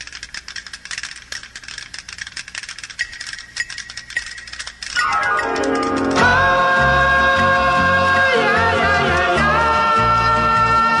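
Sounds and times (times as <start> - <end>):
rattling clatter of clicks: 0.0 - 6.4.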